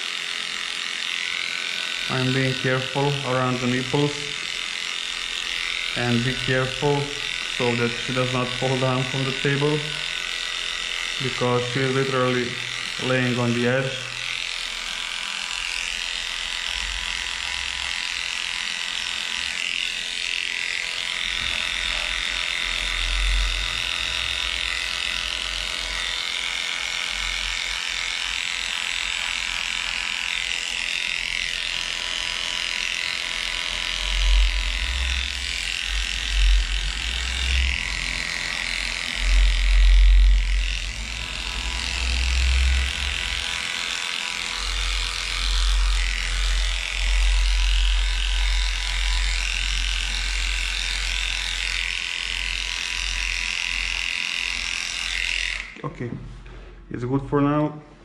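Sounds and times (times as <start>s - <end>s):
electric dog clipper buzzing: 0.0s - 55.8s.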